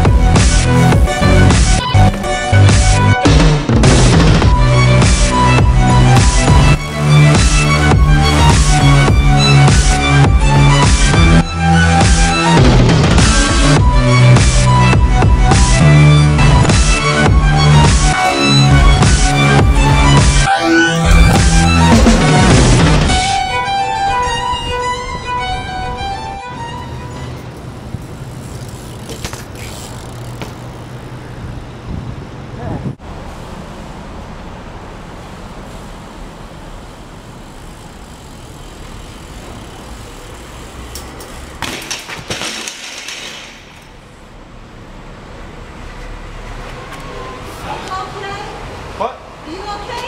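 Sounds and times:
electronic music: 0.0 - 27.5
echoing parking garage hum: 16.1 - 50.0
bike crashing on concrete: 28.5 - 30.7, 40.9 - 44.0.

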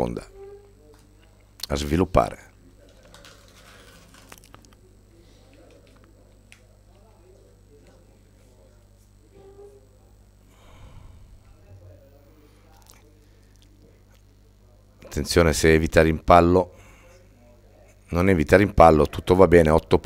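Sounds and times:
faint voices: 0.0 - 15.4
low steady hum: 0.0 - 20.0.

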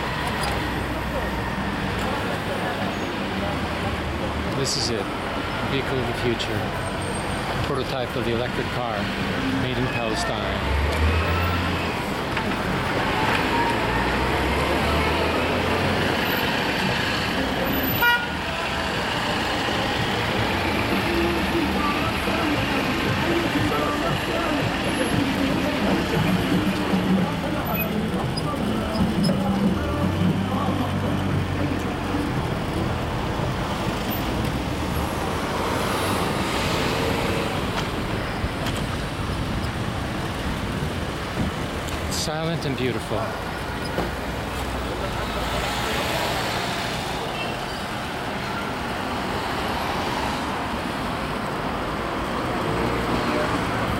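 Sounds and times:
people's voices: 0.0 - 50.7
vehicle engines passing: 0.0 - 53.9
car horns tooting: 17.6 - 19.2.

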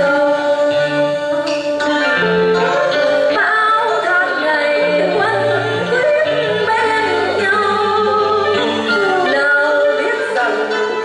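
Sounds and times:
instrumental accompaniment: 0.0 - 11.0
woman singing opera melody: 0.0 - 11.0.

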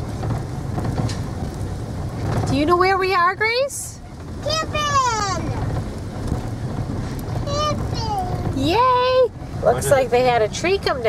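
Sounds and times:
van engine and tyres rumbling: 0.0 - 11.0.

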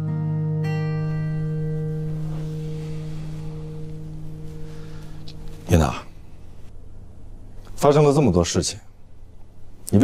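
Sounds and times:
sustained low chord: 0.0 - 6.8.

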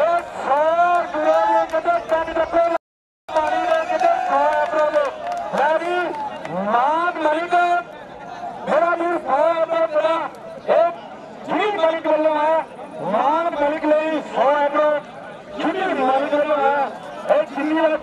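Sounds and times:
man commentating in chant: 0.0 - 8.0, 8.6 - 18.0.

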